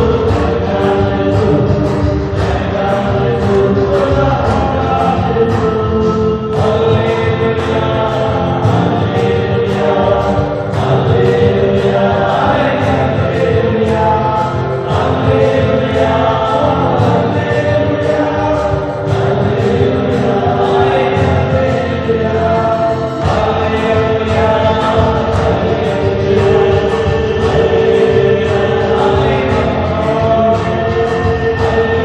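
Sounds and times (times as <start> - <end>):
congregation singing a hymn: 0.0 - 32.0
man singing through loudspeakers: 0.0 - 32.0
steady beat: 0.0 - 32.0.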